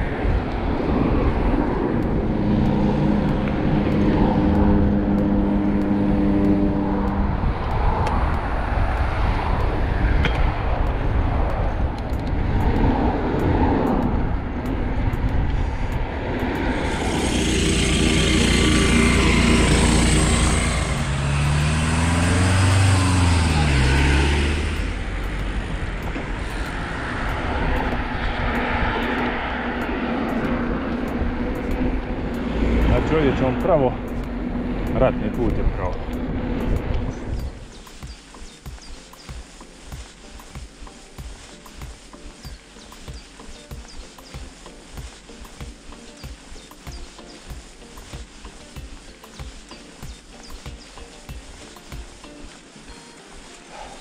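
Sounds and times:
bicycle tyre noise: 0.0s - 54.0s
passing vehicle engines: 0.0s - 54.0s
wind rushing over microphone: 0.0s - 54.0s
lawn mower running: 16.3s - 27.1s.

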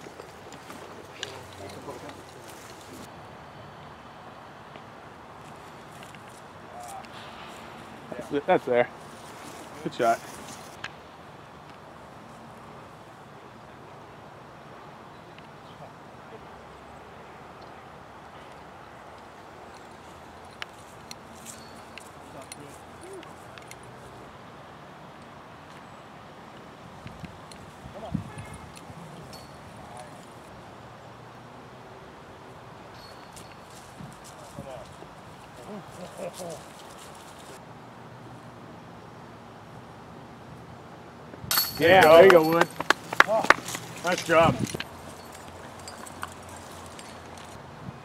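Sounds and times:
outdoor background hiss: 0.0s - 48.0s
disc hitting metal chains: 41.5s - 46.2s.

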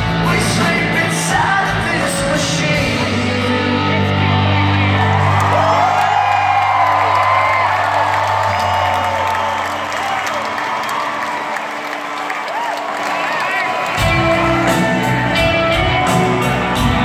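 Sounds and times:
crowd cheering and whooping: 4.4s - 17.0s
rock band closing chord: 13.9s - 17.0s.

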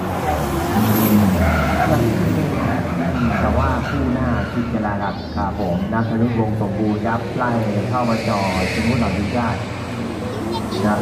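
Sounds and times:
race car engines passing: 0.0s - 11.0s.

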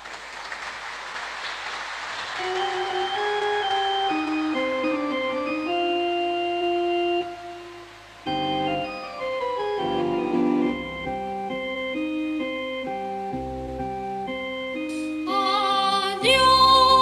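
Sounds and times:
soft hiss: 0.1s - 17.0s
church organ chords: 2.4s - 15.7s.

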